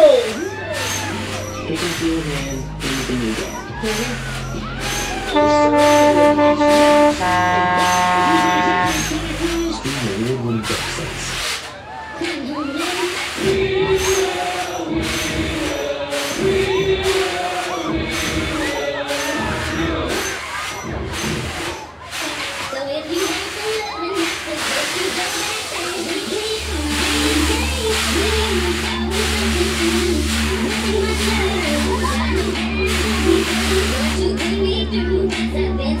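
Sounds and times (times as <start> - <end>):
fairground ride music: 0.0 - 36.0
voices shouting and singing: 0.0 - 36.0
deep steady drone: 0.9 - 10.0, 26.6 - 36.0
hiss: 21.2 - 34.2.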